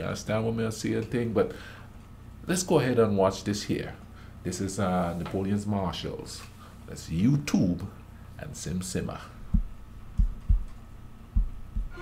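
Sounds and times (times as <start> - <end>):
dull low thumps: 9.4 - 12.0.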